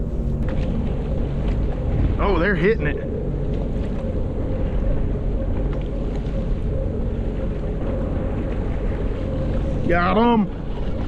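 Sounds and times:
wind rumble on microphone: 0:00.0 - 0:11.0.

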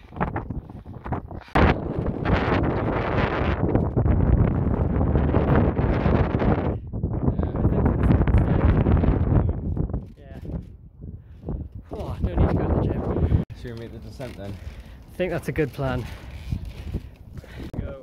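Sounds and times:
gusty wind buffeting microphone: 0:00.0 - 0:18.0.

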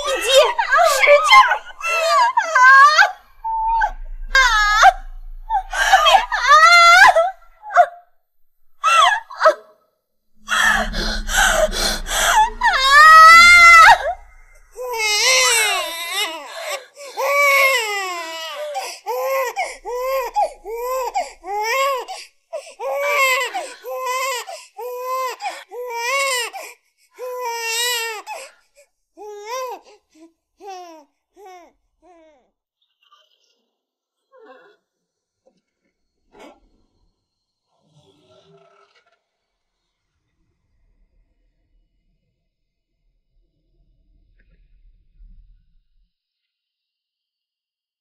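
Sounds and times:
newborn baby crying: 0:00.0 - 0:07.9, 0:10.4 - 0:28.5
woman screaming: 0:00.0 - 0:07.9, 0:08.8 - 0:09.6, 0:10.4 - 0:16.3, 0:19.2 - 0:22.0.

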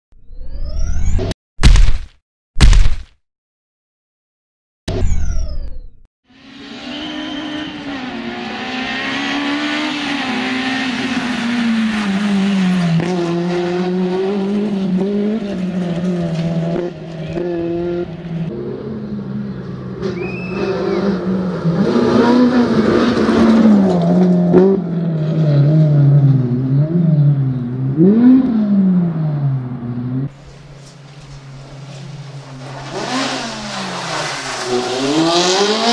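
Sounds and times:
rally car engine revving: 0:06.4 - 0:35.9
tyres on gravel: 0:30.3 - 0:35.9.

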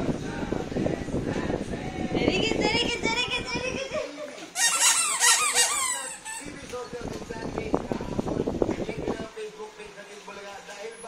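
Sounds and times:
squeaky dog toy squeaks: 0:04.6 - 0:06.6.

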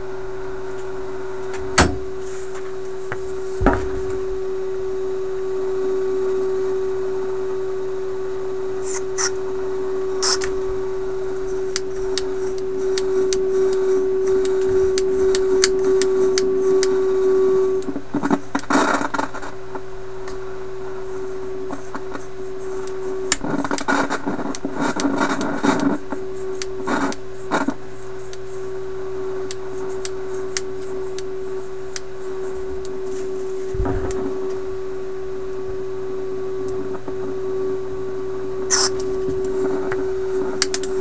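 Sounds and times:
crackling static: 0:00.0 - 0:41.0
radio loudspeaker steady tone: 0:00.5 - 0:41.0
scattered clicks: 0:38.7 - 0:41.0.

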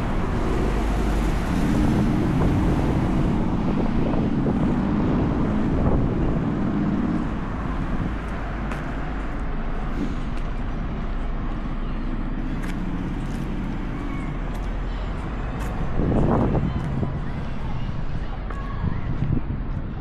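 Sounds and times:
vehicle passing: 0:00.0 - 0:18.6
street traffic hum: 0:00.0 - 0:20.0.

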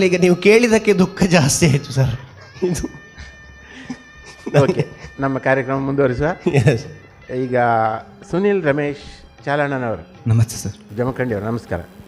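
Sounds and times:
man laughing: 0:02.1 - 0:05.4, 0:06.3 - 0:07.1.

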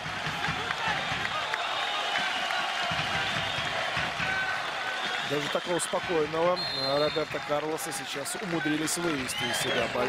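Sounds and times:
stadium crowd shouting: 0:00.0 - 0:10.0.

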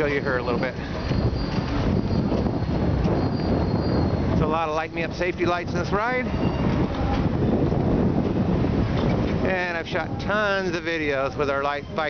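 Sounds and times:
tyres rumbling on road: 0:00.0 - 0:12.0
wind noise on microphone: 0:00.0 - 0:12.0.

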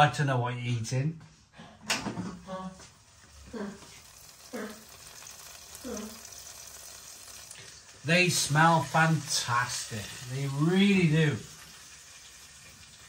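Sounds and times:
food sizzling in basket: 0:02.5 - 0:13.0.

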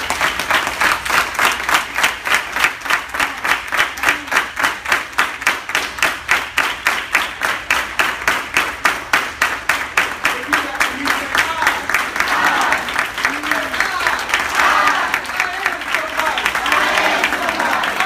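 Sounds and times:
people clapping in rhythm: 0:00.0 - 0:18.0.

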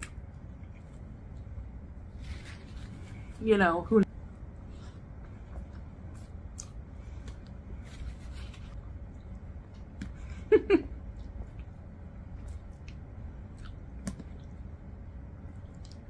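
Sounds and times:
person chewing spaghetti: 0:04.6 - 0:08.2, 0:11.0 - 0:14.8.

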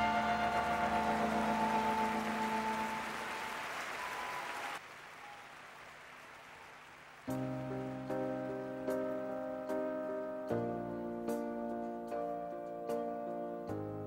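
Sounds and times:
soft keyboard chords: 0:00.0 - 0:03.6, 0:07.3 - 0:14.0
crowd applause: 0:00.0 - 0:08.1.

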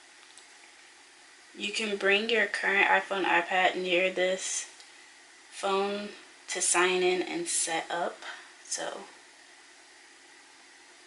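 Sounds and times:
room tone hiss: 0:00.0 - 0:11.0.

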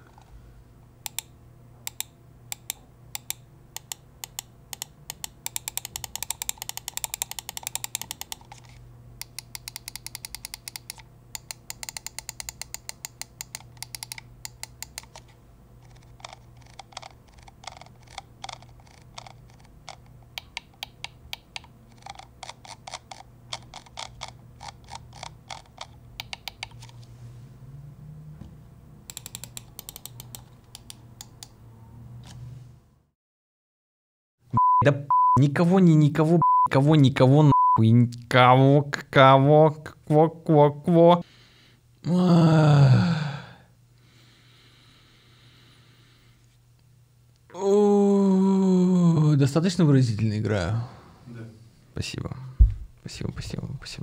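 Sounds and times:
low steady hum: 0:00.0 - 0:33.1.

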